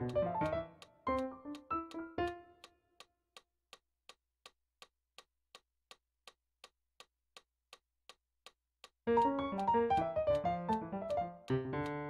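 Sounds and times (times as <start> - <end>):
faint metronome ticking: 0.0 - 12.0.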